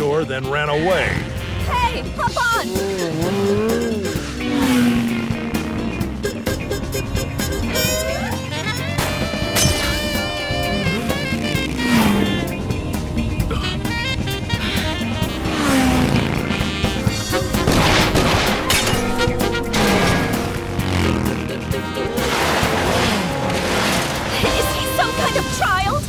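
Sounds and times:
motorcycle engines revving: 0.0s - 25.6s
chase music: 0.0s - 26.0s
tyres skidding: 0.0s - 26.0s.

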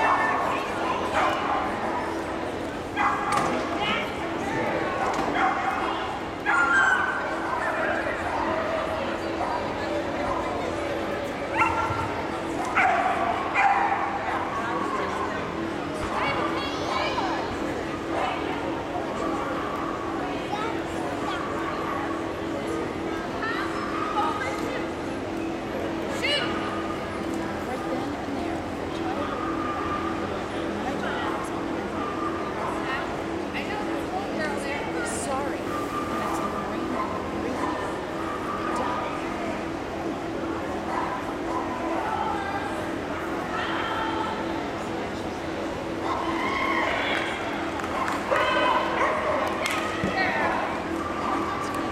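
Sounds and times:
murmur of voices: 0.0s - 51.9s.

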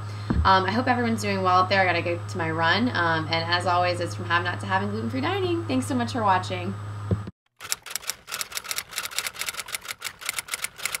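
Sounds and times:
rapid typewriter-like key clicks: 7.6s - 11.0s.

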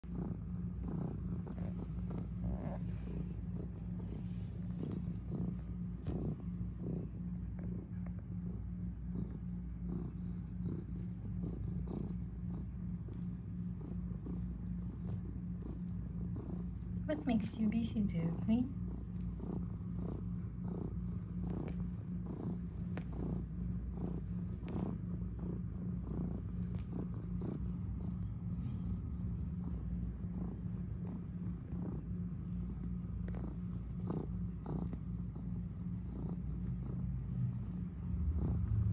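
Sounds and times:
cat purring: 0.0s - 38.9s.

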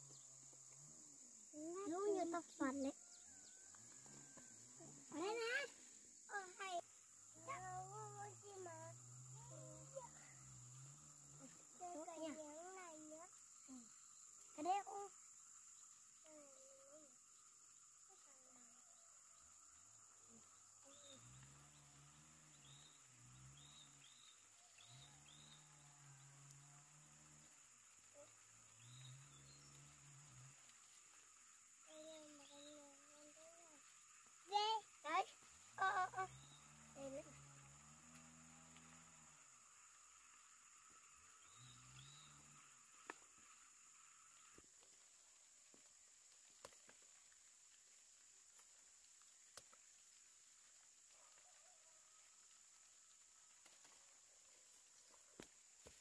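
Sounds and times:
high-pitched insect drone: 0.0s - 47.3s
quiet talk: 3.9s - 15.3s
faint clicks: 45.7s - 47.9s, 48.5s - 51.7s.

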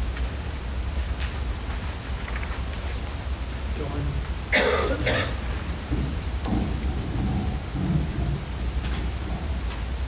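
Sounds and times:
steady low rumble: 3.5s - 10.0s.

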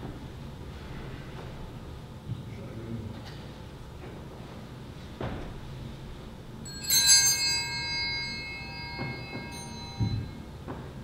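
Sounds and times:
altar bells ringing: 6.6s - 10.6s
soft knocks: 8.8s - 10.8s.

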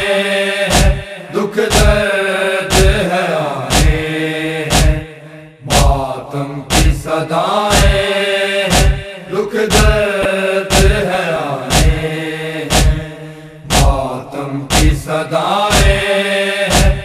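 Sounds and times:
group of voices chanting: 0.0s - 17.0s
chest beating thumps: 0.7s - 1.1s, 1.7s - 2.0s, 2.7s - 3.0s, 3.7s - 4.0s, 4.7s - 5.0s, 5.7s - 6.0s, 6.7s - 7.0s, 7.7s - 8.0s, 8.7s - 9.1s, 9.7s - 10.1s, 10.7s - 11.0s, 11.7s - 12.0s, 12.7s - 14.1s, 14.7s - 15.0s, 15.7s - 16.0s, 16.7s - 17.0s.

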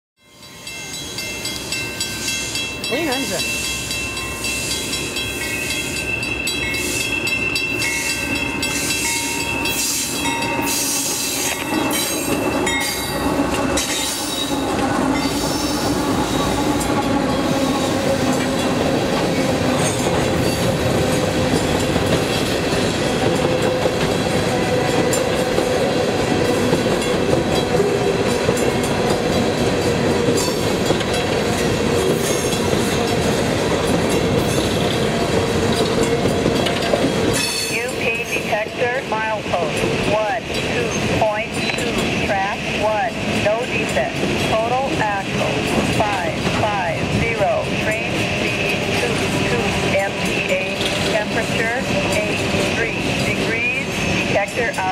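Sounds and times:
diesel locomotives passing: 0.2s - 54.9s
train cars rolling: 0.4s - 54.9s.

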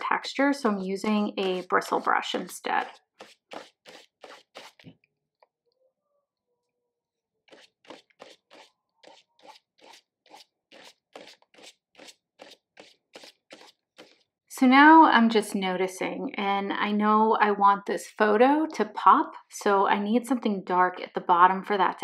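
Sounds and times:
brush scratching on paper: 1.0s - 4.9s, 7.5s - 14.2s.

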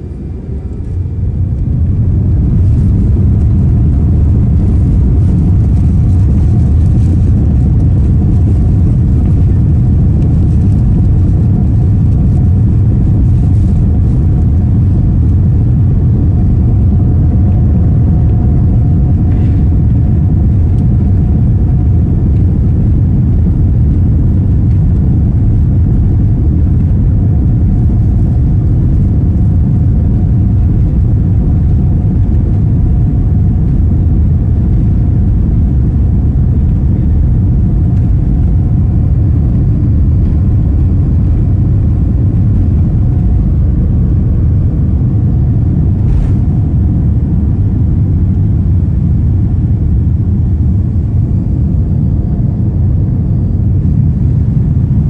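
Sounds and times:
jet engines rumbling: 0.0s - 55.0s.

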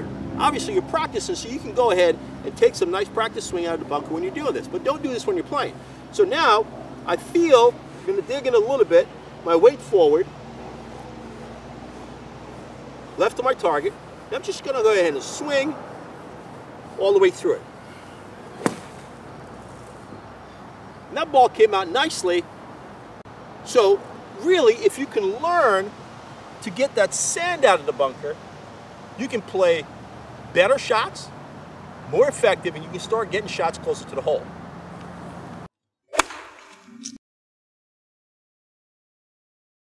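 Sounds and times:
faint outdoor background rumble: 0.0s - 35.7s.

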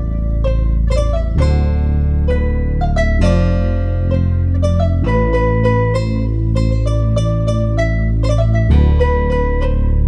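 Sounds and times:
deep bass notes: 0.0s - 10.0s
plucked guitar melody: 0.0s - 10.0s.

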